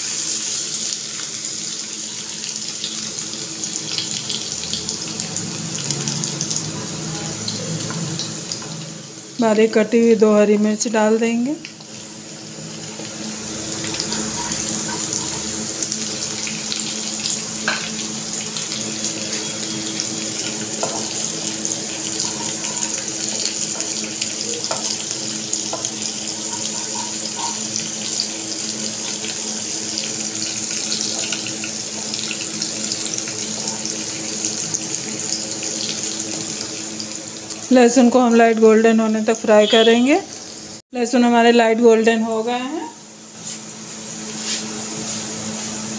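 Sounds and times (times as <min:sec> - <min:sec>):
fine crackle of frying: 0:00.0 - 0:45.9
garlic and chillies sizzling: 0:00.0 - 0:45.9.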